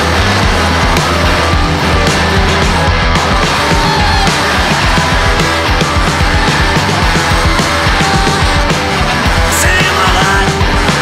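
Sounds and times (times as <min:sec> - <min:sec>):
deep bass line: 0:00.0 - 0:11.0
drum beat: 0:00.0 - 0:11.0
heavy blues-rock band: 0:00.0 - 0:11.0.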